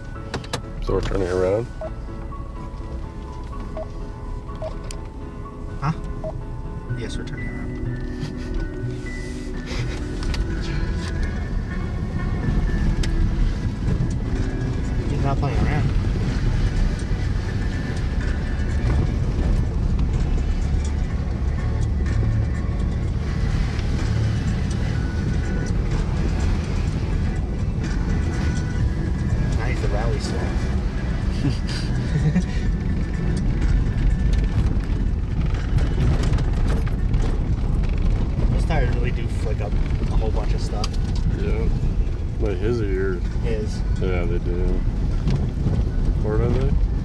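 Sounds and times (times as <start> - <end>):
engine and tyre rumble in cabin: 0.0 - 47.0.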